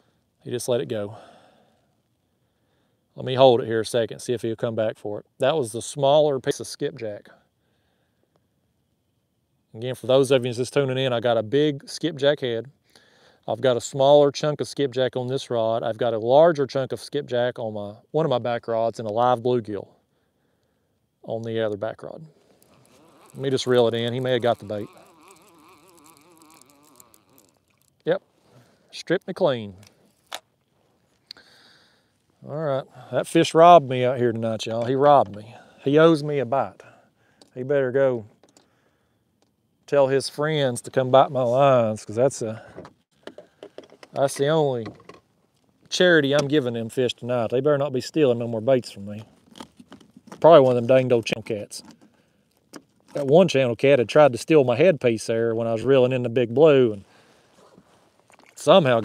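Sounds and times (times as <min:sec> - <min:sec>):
man speaking: 0:00.4 - 0:01.3, 0:21.2 - 0:22.4, 0:23.0 - 0:25.2, 0:28.9 - 0:29.9, 0:32.4 - 0:37.0, 0:37.6 - 0:38.3, 0:39.9 - 0:42.7, 0:44.2 - 0:44.9, 0:45.9 - 0:49.3, 0:50.4 - 0:51.9, 0:53.2 - 0:57.1, 0:58.6 - 0:59.0
fishing reel cranking: 0:22.6 - 0:28.0.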